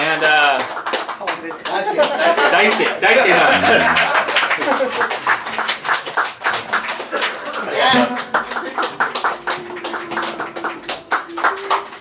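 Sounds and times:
audience clapping: 0.0s - 12.0s.

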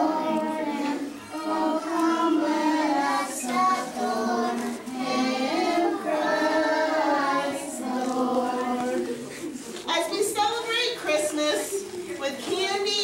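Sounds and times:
young children singing together: 0.0s - 9.7s.

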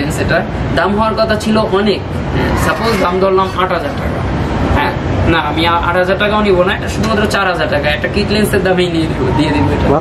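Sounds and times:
low background hum: 0.0s - 10.0s
man speaking: 2.2s - 5.6s.

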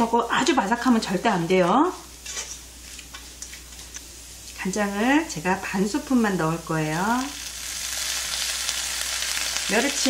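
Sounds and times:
fish sizzling in frying pan: 6.8s - 10.0s.

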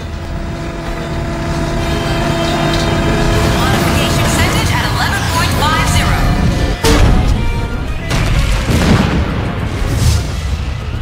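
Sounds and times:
steady hum: 0.0s - 7.0s
low machinery rumble: 0.0s - 8.0s.

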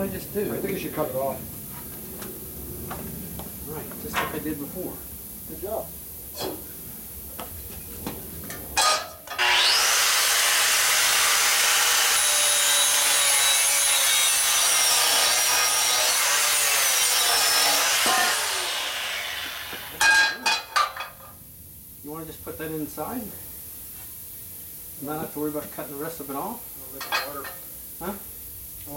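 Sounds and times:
angle grinder cutting steel: 8.8s - 20.4s.

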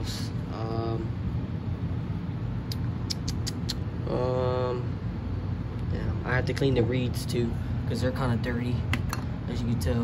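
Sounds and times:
low background rumble and hum: 0.0s - 10.0s.

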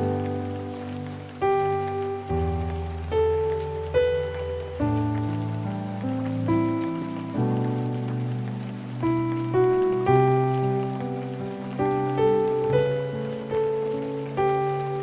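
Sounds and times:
rain falling on a surface: 0.0s - 15.0s
slow piano hymn: 0.0s - 15.0s.

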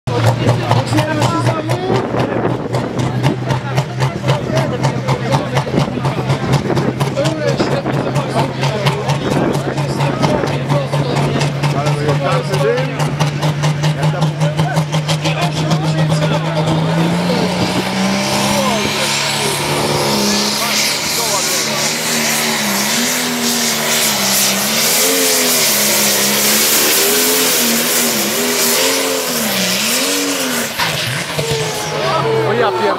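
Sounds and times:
tractor diesel engine labouring: 0.0s - 32.9s.

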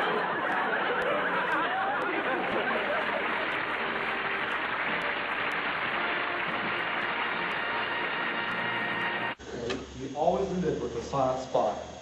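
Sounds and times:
soundtrack hiss and hum: 0.0s - 12.0s.

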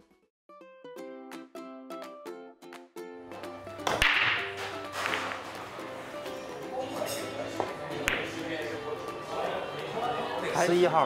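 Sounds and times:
background music: 0.0s - 11.0s
pool balls clicking together: 3.8s - 5.6s
pool cue ball break crack: 3.8s - 5.6s, 7.6s - 8.5s.

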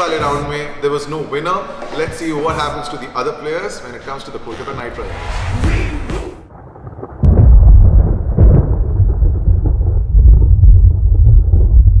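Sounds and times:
deep thunder-like rumble: 4.9s - 12.0s.

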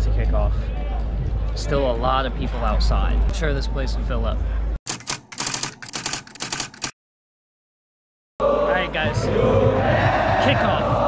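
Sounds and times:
sharp irregular clicks: 4.9s - 7.0s.

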